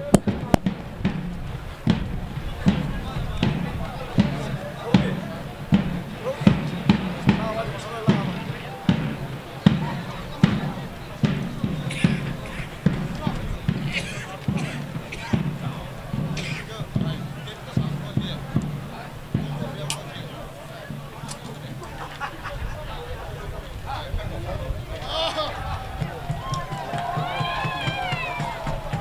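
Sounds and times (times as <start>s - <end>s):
low thumping beat: 0.0s - 23.6s, 25.4s - 29.0s
voices: 0.0s - 29.0s.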